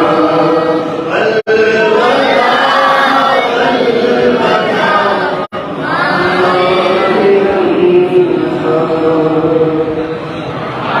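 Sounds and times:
man chanting into microphone: 6.2 - 10.2.

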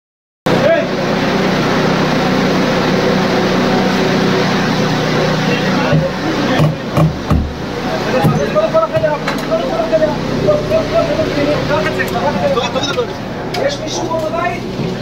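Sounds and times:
heavy thuds on wooden door: 5.9 - 7.6.

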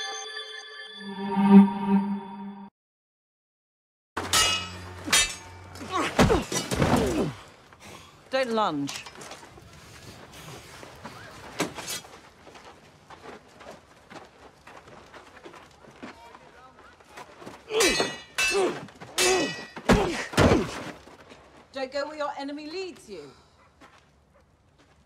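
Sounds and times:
swords clashing: 4.2 - 7.2, 17.7 - 20.7
grunts of effort: 5.8 - 8.0.

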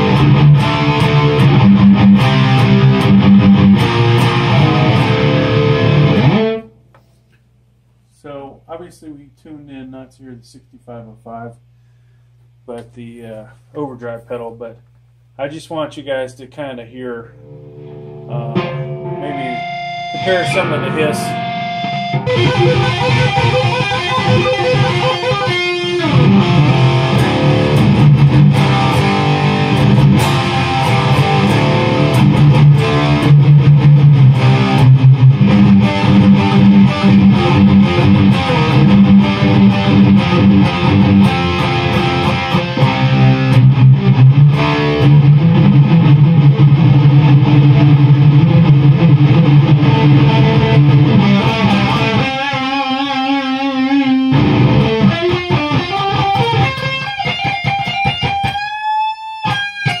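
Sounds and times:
distorted electric guitar riffing: 0.0 - 6.7, 17.3 - 60.0.

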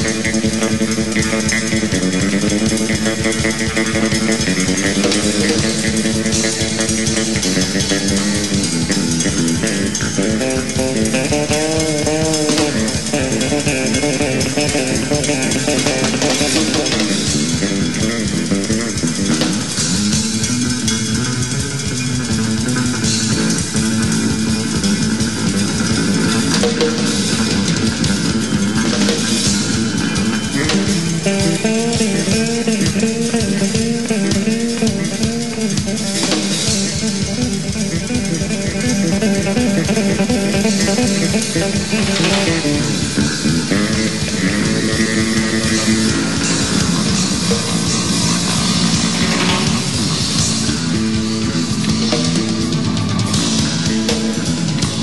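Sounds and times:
drum kit steady beat: 0.0 - 55.0
electric bass lines: 0.0 - 55.0
live band playing: 0.0 - 55.0.

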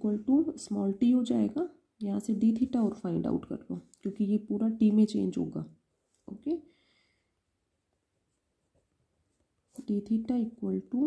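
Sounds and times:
person speaking: 0.0 - 6.7, 9.7 - 11.0.

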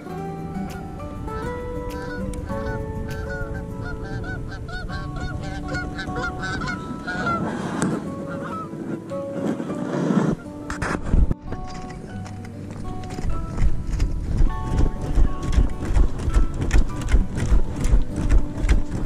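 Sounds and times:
background music: 0.0 - 19.0
geese honking: 1.4 - 10.5.

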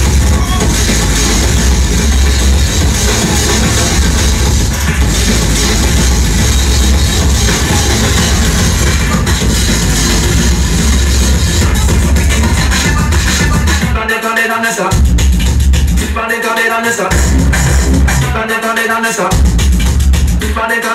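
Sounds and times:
loud electronic dance music: 0.0 - 20.9.

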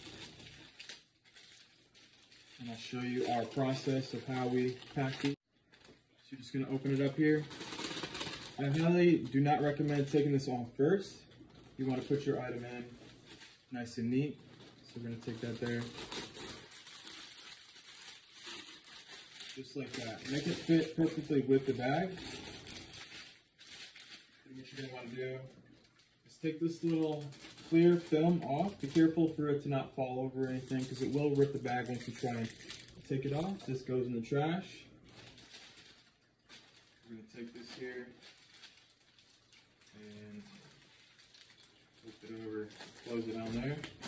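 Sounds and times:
plastic rustling and crinkling: 0.0 - 44.0.

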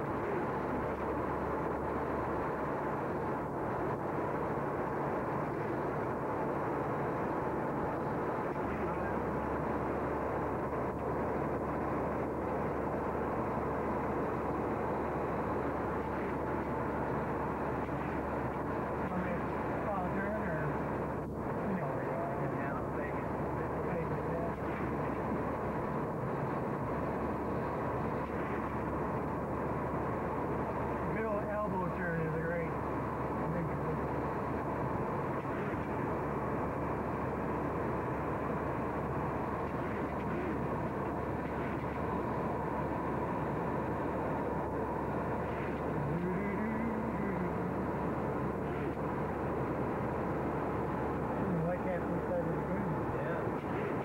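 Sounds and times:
faint voices: 0.0 - 2.0, 7.9 - 10.0, 17.8 - 25.7, 30.8 - 34.4, 44.6 - 49.0
jet cabin rushing hum: 0.0 - 54.0.

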